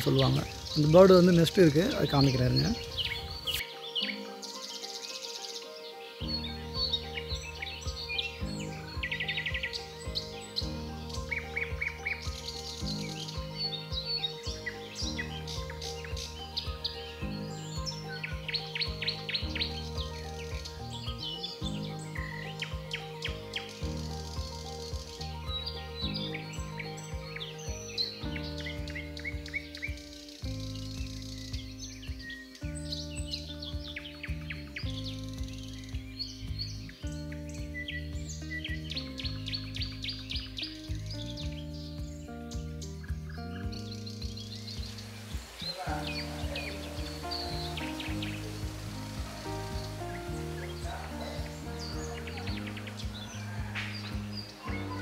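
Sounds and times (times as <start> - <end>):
background music with slow chords: 0.0 - 55.0
birds chirping: 0.0 - 55.0.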